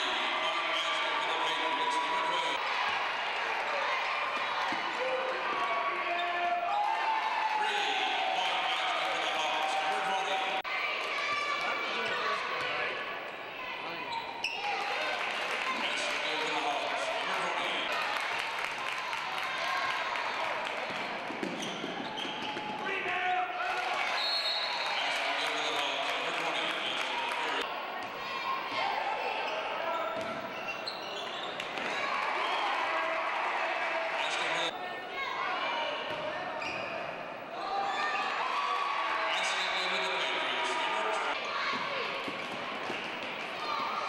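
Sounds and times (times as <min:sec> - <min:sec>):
echoing crowd voices: 0:00.0 - 0:44.0.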